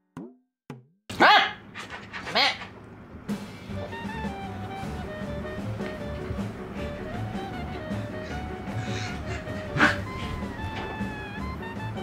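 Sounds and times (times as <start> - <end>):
dog barking: 1.1 - 2.7, 9.6 - 10.1.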